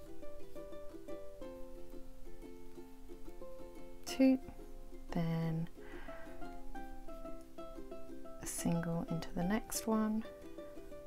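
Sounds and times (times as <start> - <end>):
plucked-string tune: 0.0 - 11.0.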